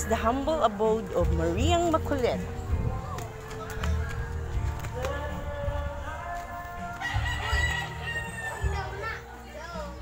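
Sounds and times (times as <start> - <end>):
rooster crowing: 7.0 - 8.9.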